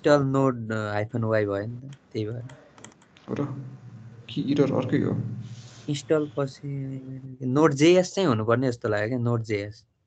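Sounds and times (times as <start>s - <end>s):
man's voice: 0.0s - 2.6s, 3.3s - 9.8s.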